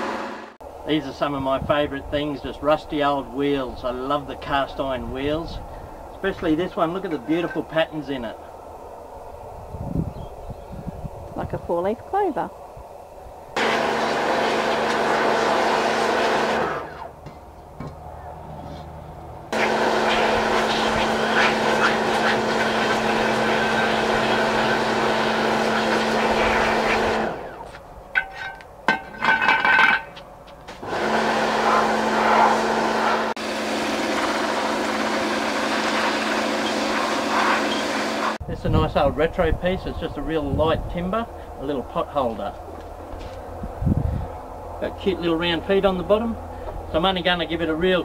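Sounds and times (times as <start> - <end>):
pump hum: 13.3 - 17.5, 19.5 - 27.8, 30.8 - 38.4
pressure washer spraying: 13.6 - 17.2, 19.6 - 27.6, 30.9 - 38.4.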